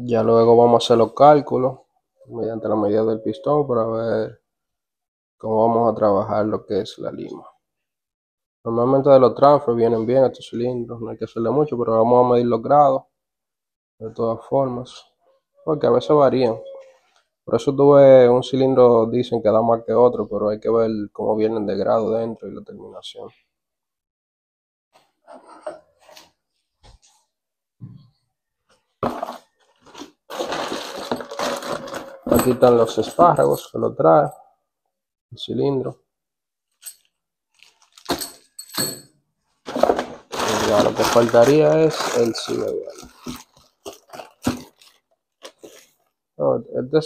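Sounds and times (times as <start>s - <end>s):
packaging crunching and rustling: 29.0s - 32.8s, 37.5s - 38.6s, 39.7s - 46.1s
metallic clinking: 31.2s - 33.7s, 38.1s - 39.1s.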